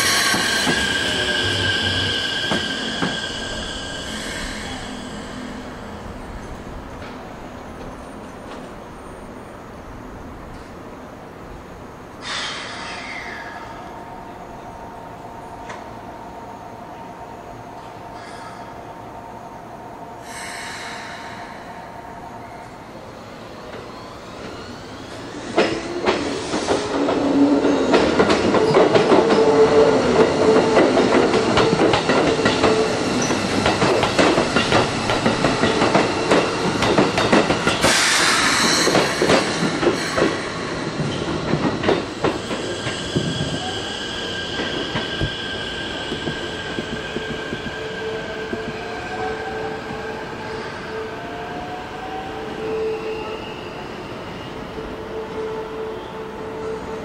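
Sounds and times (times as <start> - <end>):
high wheel squeal: 0.0 - 5.8, 42.5 - 48.5
train wheels clacking over rail joints: 25.6 - 43.4.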